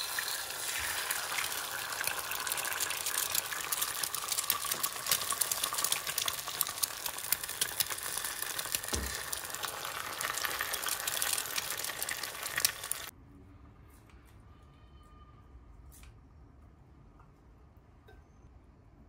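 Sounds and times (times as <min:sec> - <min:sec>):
eggs sizzling in oil: 0:00.0 - 0:13.1.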